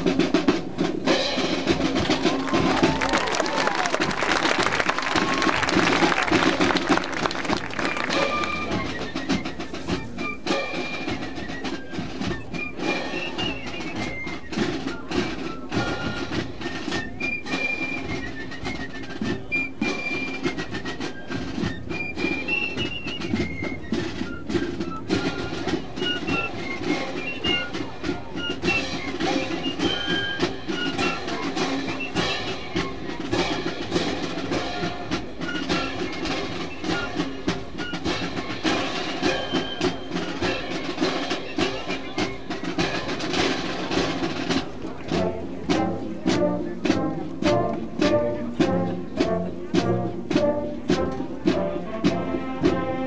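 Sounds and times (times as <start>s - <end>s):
marching band playing: 0.0s - 53.0s.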